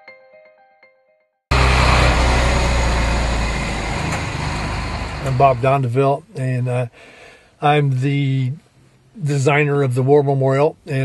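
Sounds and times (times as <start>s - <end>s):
heavy truck engine rumbling: 1.5s - 6.0s.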